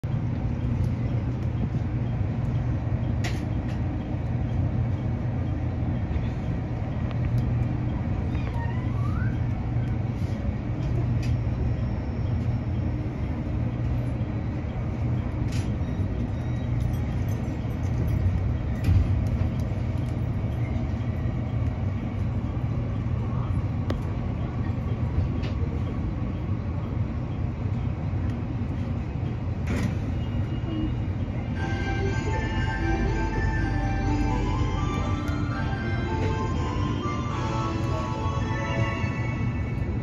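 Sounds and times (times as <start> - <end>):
electric train equipment humming: 0.0 - 40.0.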